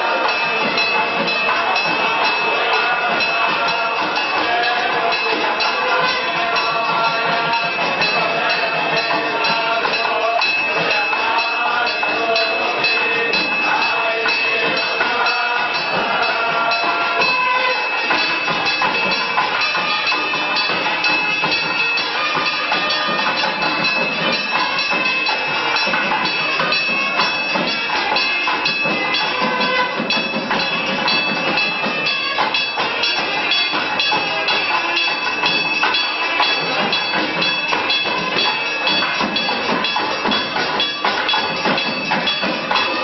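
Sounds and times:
temple bells clanging: 0:00.0 - 0:43.0
temple music: 0:00.0 - 0:43.0.

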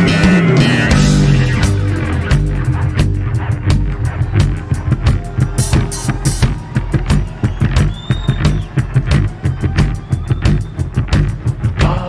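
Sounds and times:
driving drum beat: 0:00.0 - 0:12.0
heavy bass line: 0:00.0 - 0:12.0
rock band playing: 0:00.0 - 0:12.0.

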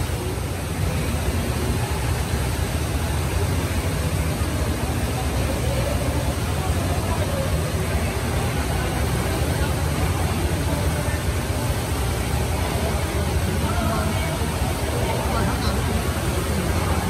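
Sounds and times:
faint distant voices: 0:00.0 - 0:17.0
water pouring into pool: 0:00.0 - 0:17.0.

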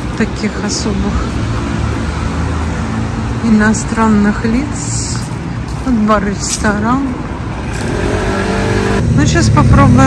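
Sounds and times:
motor scooter approaching: 0:07.6 - 0:09.2.

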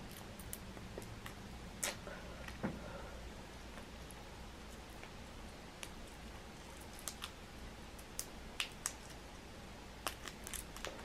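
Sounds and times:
shrimp shell peeling crackles: 0:05.8 - 0:07.4, 0:08.0 - 0:09.2, 0:10.0 - 0:11.0.

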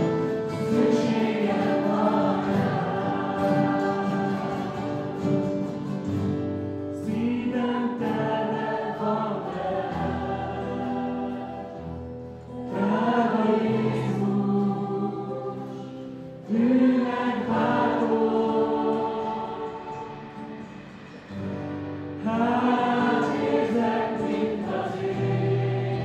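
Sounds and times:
group singing worship song: 0:00.0 - 0:26.0
strummed acoustic guitars: 0:00.0 - 0:26.0.

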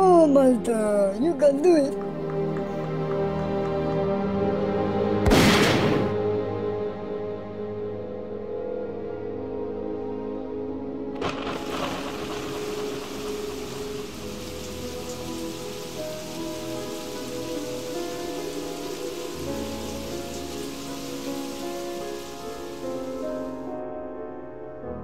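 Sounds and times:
slow background music: 0:00.0 - 0:25.0
hissing blizzard wind: 0:11.2 - 0:23.7.

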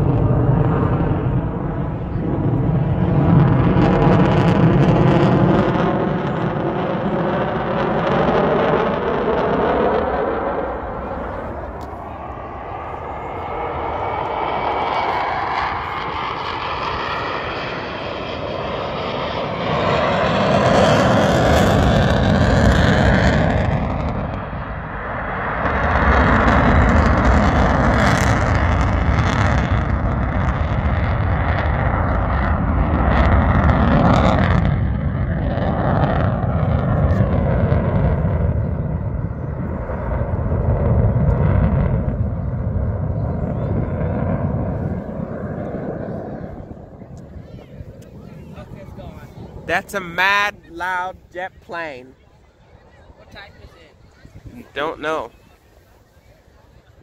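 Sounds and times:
jet aircraft flying overhead: 0:00.0 - 0:57.0
wind buffeting microphone: 0:00.0 - 0:57.0.

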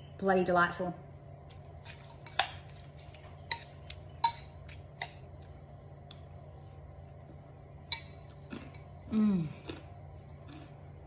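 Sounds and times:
spoon clinking ceramic bowl: 0:03.5 - 0:05.2.

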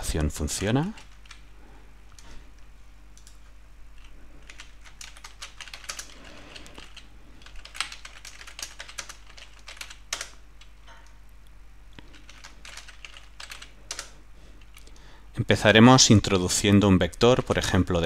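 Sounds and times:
faint low hum: 0:00.0 - 0:18.0
keyboard typing clicks: 0:04.0 - 0:11.2, 0:12.0 - 0:15.0.

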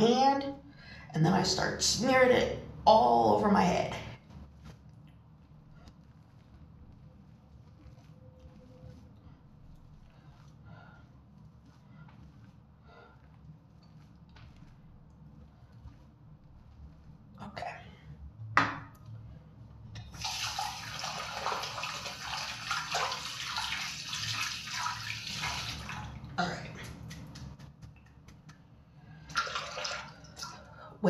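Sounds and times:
tap water splashing in basin: 0:20.0 - 0:26.1, 0:29.3 - 0:30.6.

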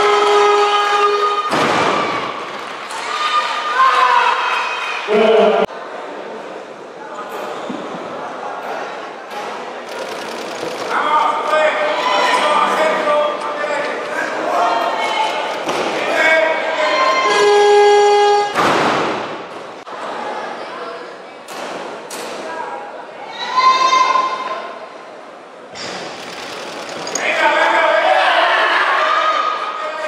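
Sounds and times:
spectators shouting encouragement: 0:11.0 - 0:13.4.

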